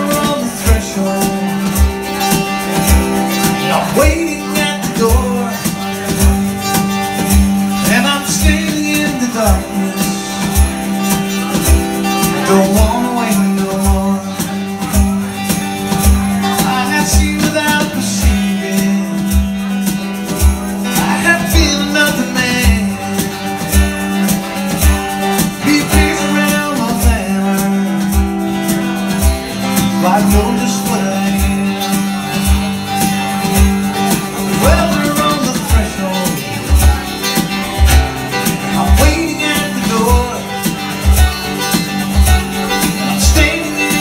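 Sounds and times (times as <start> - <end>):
acoustic guitars strumming: 0.0 - 44.0
hand drums beat: 0.0 - 44.0
man singing: 0.0 - 44.0.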